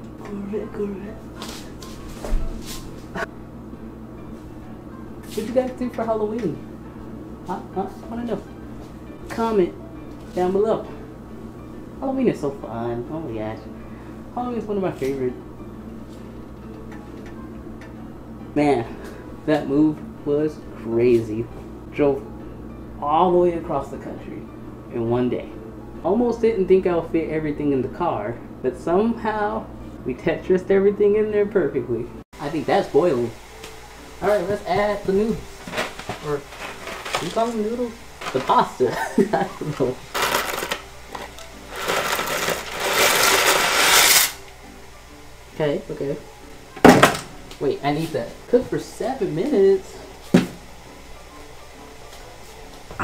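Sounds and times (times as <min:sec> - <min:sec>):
refrigerator hum: 0:00.0 - 0:53.0
dry pasta rattling in a box: 0:40.1 - 0:40.8, 0:41.7 - 0:44.1.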